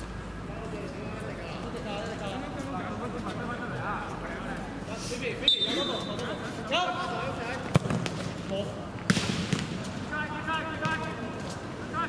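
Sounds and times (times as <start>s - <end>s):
football kicked thuds: 7.7s - 8.2s.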